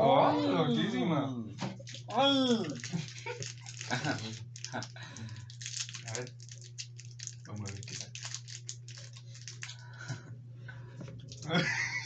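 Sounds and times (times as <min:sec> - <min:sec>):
steady low hum: 0:00.0 - 0:12.0
plastic wrapper crackling: 0:01.8 - 0:09.9.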